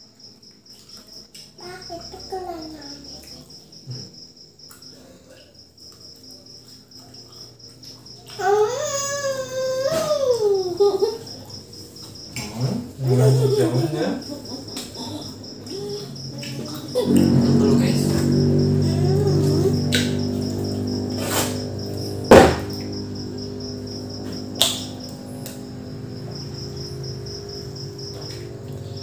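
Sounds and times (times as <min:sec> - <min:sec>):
crickets chirping: 0:00.0 - 0:29.0
girl's voice holding a high note: 0:17.0 - 0:20.0.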